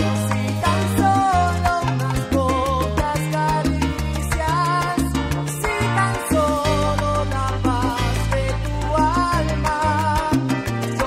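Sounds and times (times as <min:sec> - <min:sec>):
salsa music: 0:00.0 - 0:11.0.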